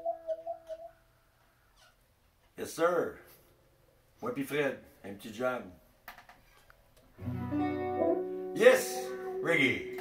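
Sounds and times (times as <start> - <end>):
guitar chord ringing: 7.2 - 10.0.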